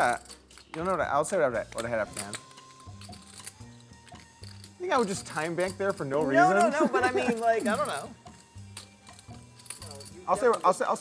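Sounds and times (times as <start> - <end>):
poker chips clicking: 0.0 - 1.0, 1.6 - 11.0
faint background music: 0.0 - 11.0.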